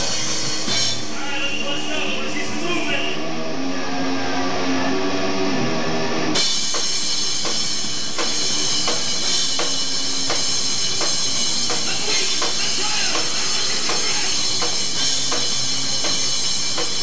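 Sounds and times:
cymbals crashing: 0:00.0 - 0:02.0
steady drum beat: 0:00.0 - 0:02.7, 0:06.4 - 0:17.0
live rock band playing: 0:00.0 - 0:17.0.

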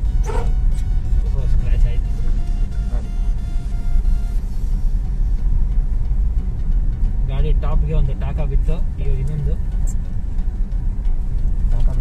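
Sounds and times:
car engine: 0:00.0 - 0:12.0
tyre and road noise: 0:00.0 - 0:12.0.

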